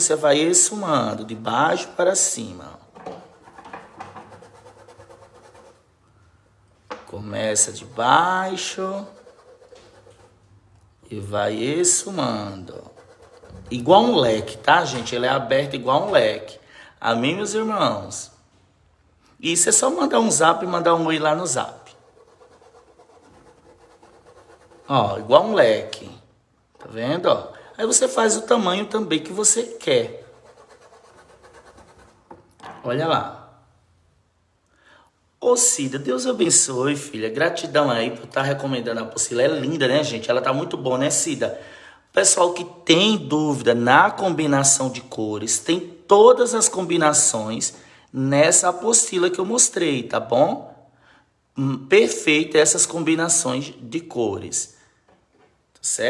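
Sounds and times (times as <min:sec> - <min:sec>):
person speaking: 0:00.0 - 0:05.9, 0:06.9 - 0:18.4, 0:19.4 - 0:33.6
stiff brush rubbing cloth: 0:03.2 - 0:06.0, 0:07.4 - 0:10.5, 0:11.8 - 0:14.7, 0:20.3 - 0:26.0, 0:27.8 - 0:32.3.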